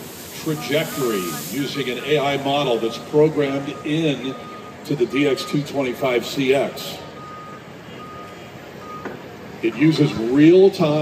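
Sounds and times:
steady background noise: 0.0 - 11.0
backup alarm beeping: 0.4 - 9.2.

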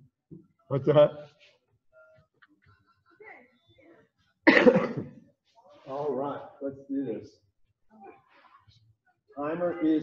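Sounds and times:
person coughing: 4.5 - 5.2.

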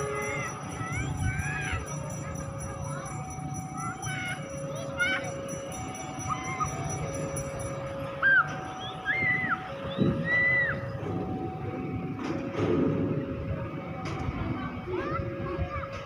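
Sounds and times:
two-tone warning alarm: 0.0 - 15.7.

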